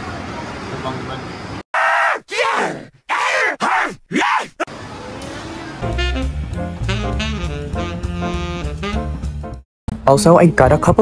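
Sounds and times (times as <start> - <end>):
person groaning and yelling: 1.8 - 4.7.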